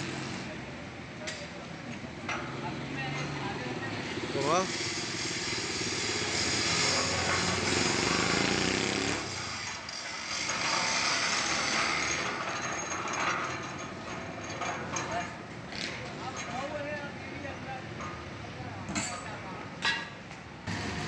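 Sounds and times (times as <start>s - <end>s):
small engine running: 4.5s - 9.4s.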